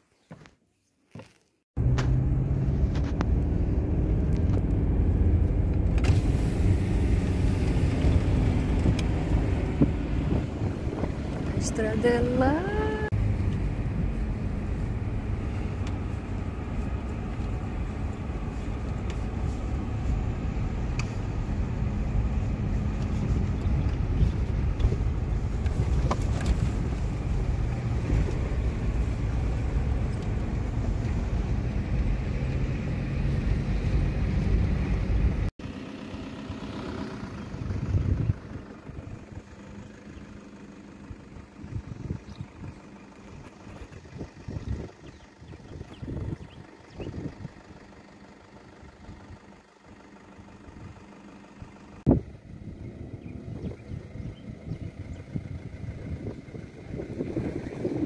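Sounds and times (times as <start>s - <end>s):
tyres and engine rumble: 1.1s - 58.0s
wind bumps on microphone: 43.8s - 47.5s, 52.1s - 58.0s.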